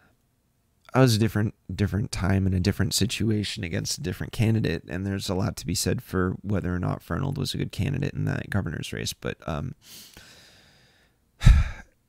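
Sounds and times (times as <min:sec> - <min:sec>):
man sighing: 0:11.4 - 0:12.0.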